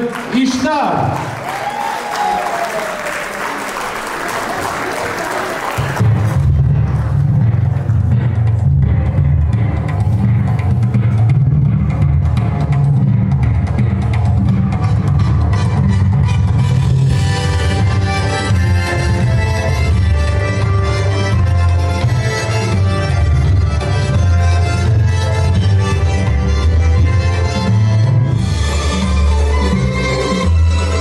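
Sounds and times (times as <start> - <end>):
audience applause: 0.0 - 7.2.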